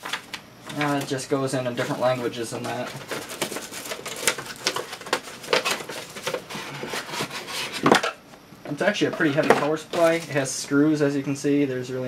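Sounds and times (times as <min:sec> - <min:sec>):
cardboard box rustling and scraping: 0:01.8 - 0:08.0, 0:09.2 - 0:10.4.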